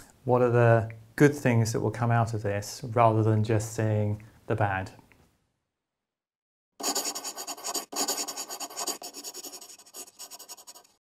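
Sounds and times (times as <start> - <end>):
marker pen scratching: 6.8 - 11.0.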